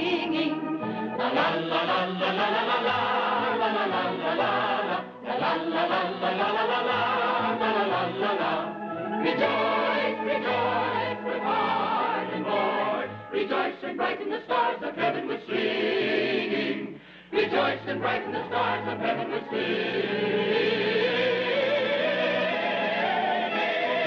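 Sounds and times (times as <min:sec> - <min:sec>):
electric organ: 0:00.0 - 0:13.4
choir singing: 0:00.0 - 0:24.0.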